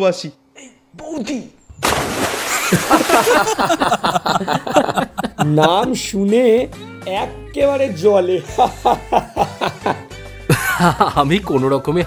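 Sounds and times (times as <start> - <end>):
person laughing: 2.5 - 6.0, 8.4 - 11.2
soft background music: 3.6 - 12.0.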